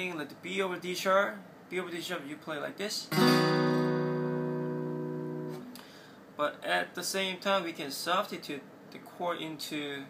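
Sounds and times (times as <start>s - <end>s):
acoustic guitar chord ringing: 3.1s - 5.7s.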